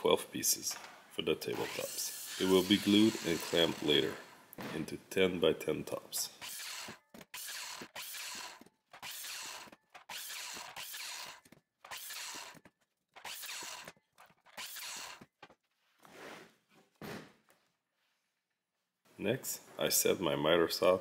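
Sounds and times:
miter saw crosscutting wood: 1.4 - 4.4, 6.3 - 15.5.

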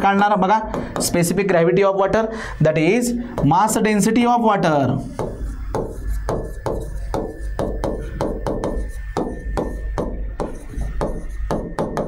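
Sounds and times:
stylus tapping on glass board: 3.3 - 3.8, 5.1 - 12.0.

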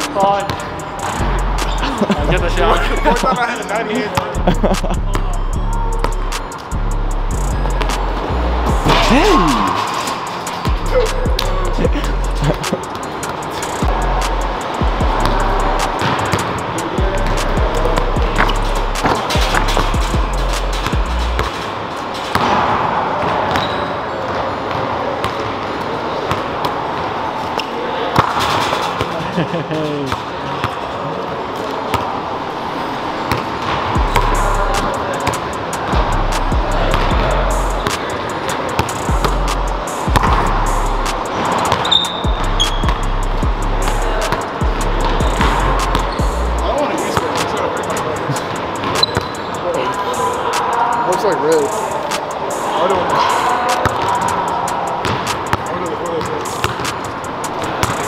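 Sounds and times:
basketball bouncing on hardwood floor: 40.2 - 40.4, 56.6 - 56.8.

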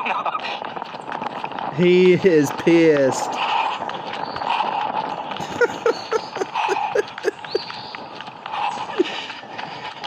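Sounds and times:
footsteps running on a path: 0.0 - 10.0
person panting: 4.4 - 7.7, 8.4 - 10.0.

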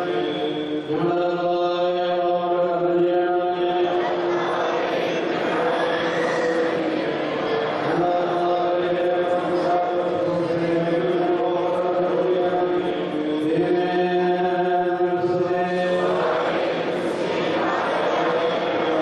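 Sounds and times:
congregation chanting a hymn: 0.0 - 19.0.

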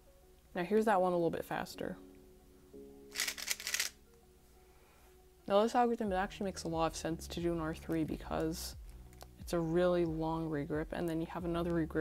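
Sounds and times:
puzzle cube plastic clicking: 3.1 - 4.0.

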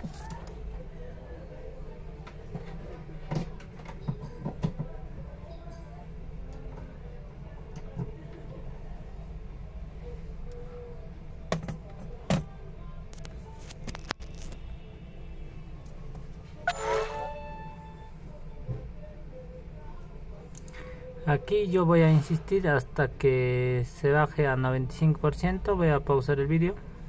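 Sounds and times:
faint background music: 0.0 - 27.0
low room hum: 0.0 - 27.0.

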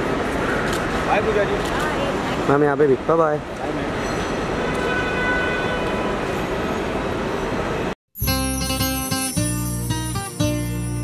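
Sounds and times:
airport terminal ambience: 0.0 - 8.0.

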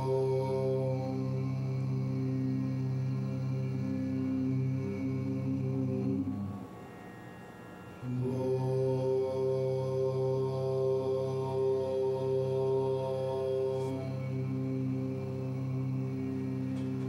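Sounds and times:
chanted mantra: 0.0 - 17.0.

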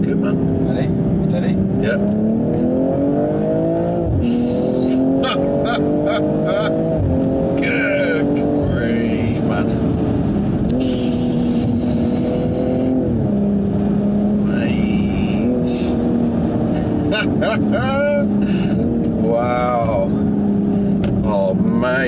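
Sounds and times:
car engine under hard acceleration: 0.0 - 22.0.

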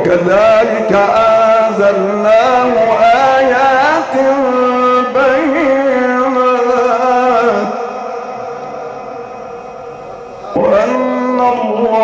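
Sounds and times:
man chanting recitation with echo: 0.0 - 12.0.

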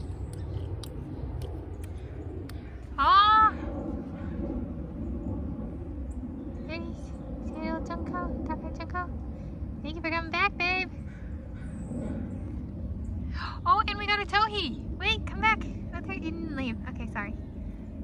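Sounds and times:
low background rumble: 0.0 - 18.0
woman's high-pitched wordless voice: 3.0 - 3.6, 6.7 - 9.2, 9.8 - 10.9, 13.6 - 17.3.

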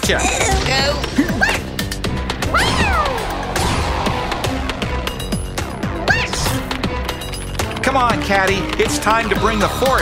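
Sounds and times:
cartoon background music: 0.0 - 10.0.

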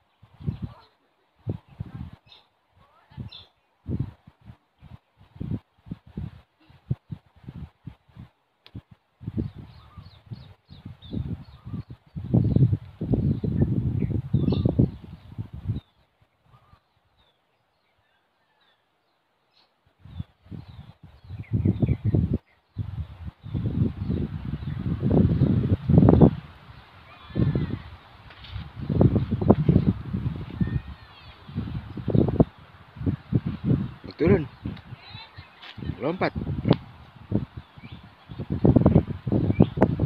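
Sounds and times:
small birds chirping: 0.0 - 3.8, 8.7 - 40.0
wind rumbling on microphone: 0.0 - 17.8, 19.8 - 40.0.

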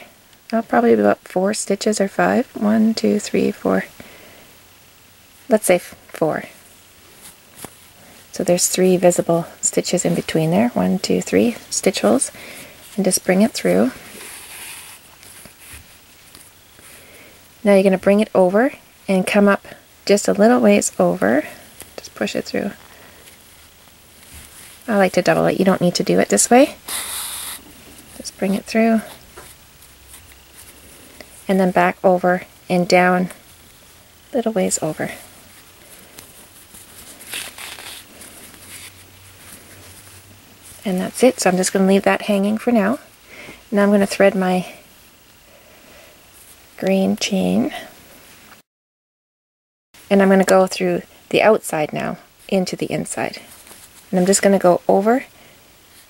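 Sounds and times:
yarn rustling through fabric: 5.3 - 45.4, 50.9 - 56.0.

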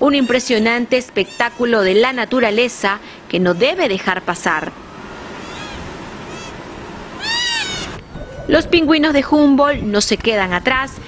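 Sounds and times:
steady background hiss: 0.0 - 11.0
animal bleating calls: 5.4 - 8.6.

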